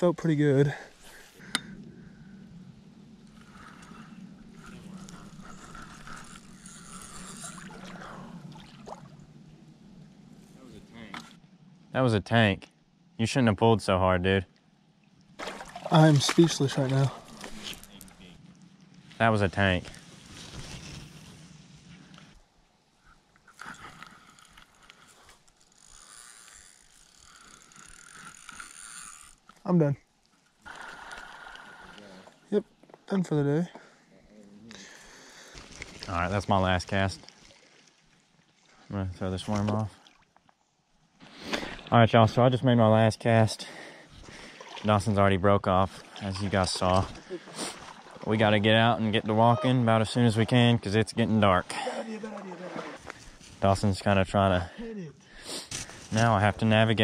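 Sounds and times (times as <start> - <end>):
fishing reel whirring: 3.3 - 8.2, 23.5 - 29.7
faint reel clicks: 23.5 - 29.7
person speaking: 48.3 - 53.0.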